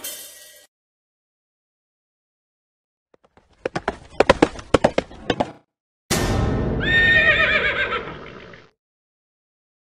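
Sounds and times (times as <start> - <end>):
horse whinnying: 6.8 - 8.7.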